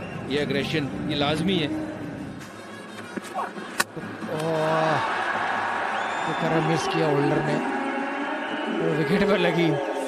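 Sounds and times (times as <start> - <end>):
stadium crowd cheering: 4.2 - 10.0.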